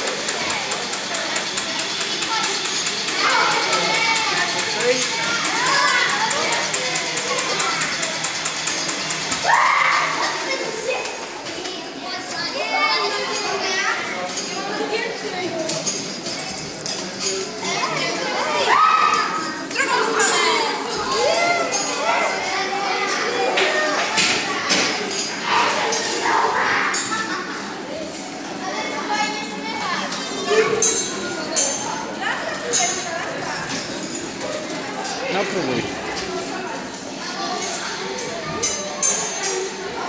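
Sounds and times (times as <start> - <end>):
children chattering: 0.0 - 40.0.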